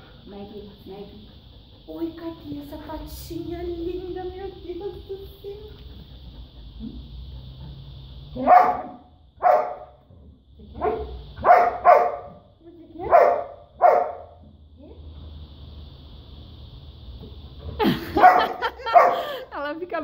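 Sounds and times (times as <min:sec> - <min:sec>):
dog barking: 0:08.4 - 0:10.0, 0:10.8 - 0:14.4, 0:18.1 - 0:19.4.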